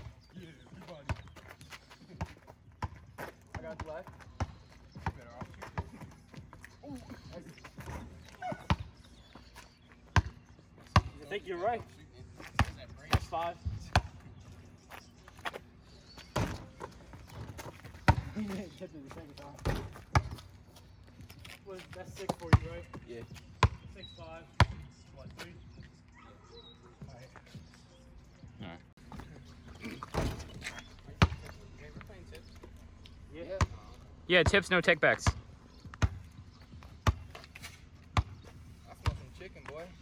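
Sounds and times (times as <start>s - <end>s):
basketball bouncing on asphalt: 0.0s - 6.6s, 7.8s - 11.4s, 12.4s - 14.5s, 16.2s - 20.9s, 21.8s - 25.8s, 30.0s - 32.7s, 33.4s - 34.6s, 35.2s - 40.0s
voices talking: 0.0s - 40.0s.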